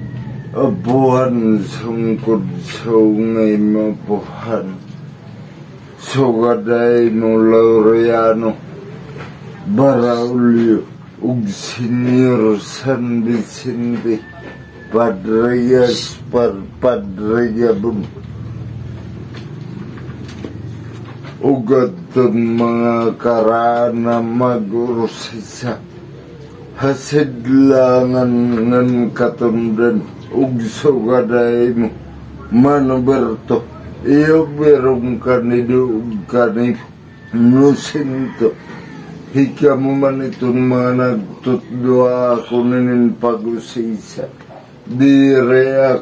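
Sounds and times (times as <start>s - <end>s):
man chanting: 0.0s - 5.1s, 6.0s - 8.8s, 9.6s - 19.3s, 20.1s - 25.9s, 26.7s - 46.0s
engine humming: 0.0s - 46.0s.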